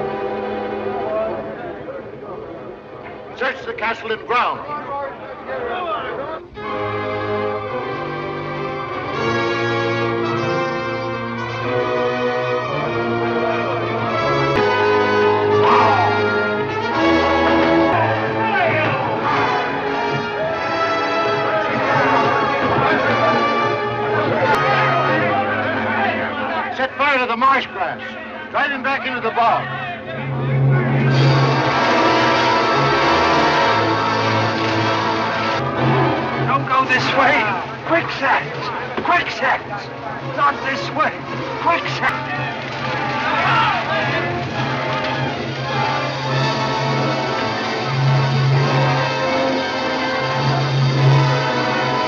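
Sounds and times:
orchestral music with brass chords: 0.0s - 4.6s, 6.5s - 52.0s.

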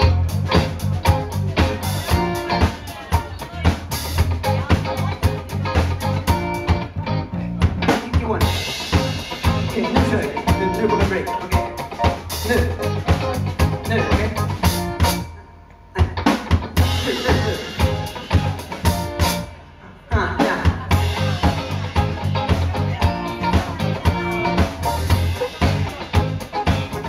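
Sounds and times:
bass guitar: 0.0s - 27.0s
drum kit: 0.0s - 27.0s
electric guitar: 0.0s - 27.0s
keyboard: 0.0s - 27.0s.

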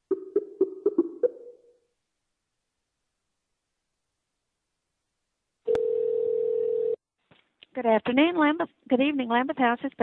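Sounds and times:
telephone line click: 5.7s - 7.0s
telephone ringing tone: 5.7s - 7.0s.

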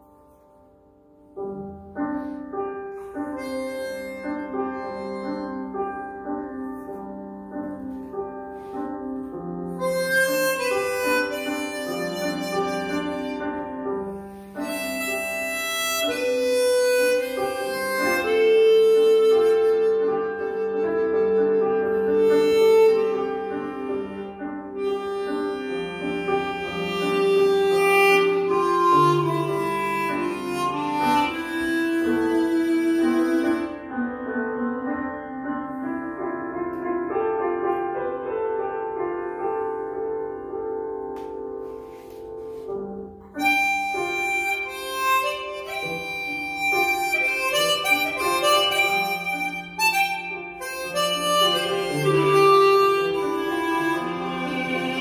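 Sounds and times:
piano over a loudspeaker: 0.0s - 55.0s
chromatic harmonica melody: 2.0s - 34.2s, 41.7s - 55.0s.

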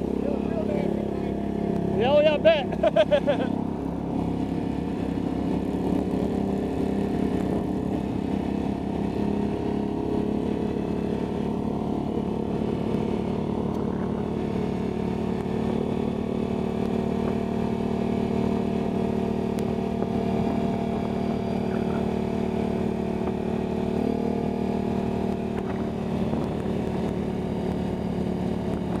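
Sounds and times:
atv engine running: 0.0s - 29.0s.

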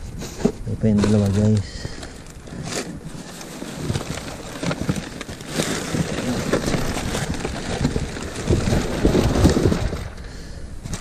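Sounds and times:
heavier crunching: 0.2s - 11.0s
plastic packaging crinkling: 0.9s - 10.3s.

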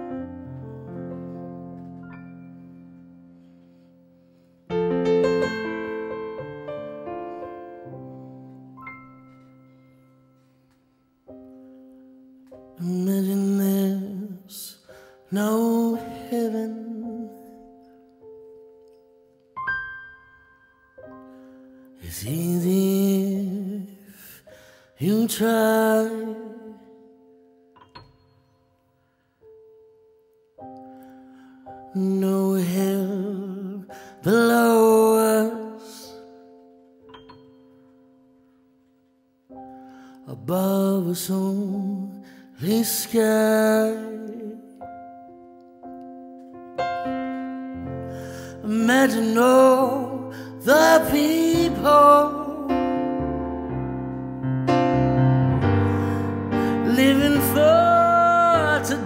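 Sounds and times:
electric keyboard chords: 0.0s - 13.0s, 44.3s - 59.0s
soft keyboard chords: 0.0s - 24.1s, 25.0s - 59.0s
man singing a slow ballad: 12.6s - 17.7s, 21.9s - 27.1s, 31.7s - 36.5s, 40.2s - 44.8s, 47.8s - 53.2s, 55.6s - 59.0s.

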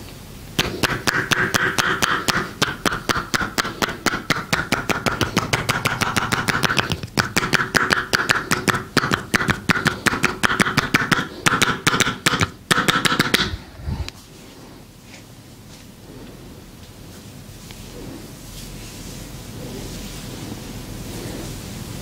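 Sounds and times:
hands chopping on bare back: 0.6s - 13.6s.

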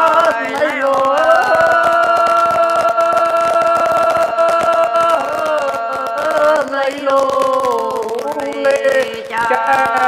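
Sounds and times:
person singing long note: 0.0s - 10.0s.

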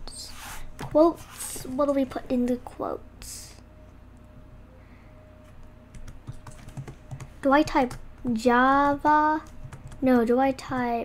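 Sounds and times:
soft computer keyboard typing: 5.9s - 11.0s.

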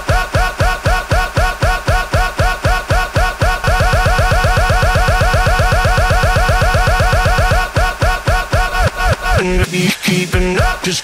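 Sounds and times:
looped bass-heavy rap beat: 0.0s - 11.0s.

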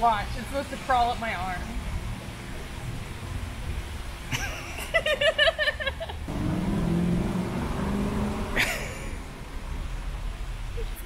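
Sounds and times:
vehicle engine droning past: 6.3s - 10.8s.

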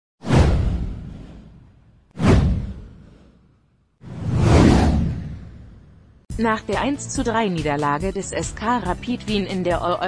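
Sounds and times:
whoosh with deep boom: 0.2s - 6.3s.

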